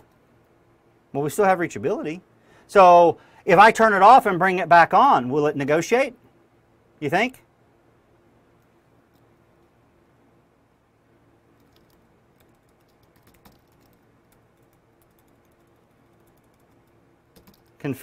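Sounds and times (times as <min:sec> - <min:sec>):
faint keyboard keystrokes: 0:11.6 - 0:17.8.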